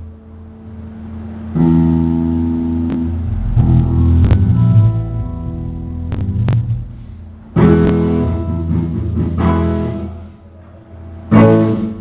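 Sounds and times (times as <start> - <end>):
amplified guitar chord: 0.0 - 10.4
bass guitar: 0.0 - 12.0
sharp drum hits: 3.1 - 8.2.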